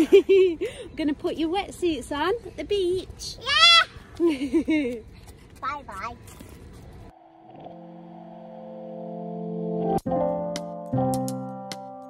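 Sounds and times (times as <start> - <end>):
outdoor noise: 0.0 - 11.9
child shouting: 3.3 - 4.0.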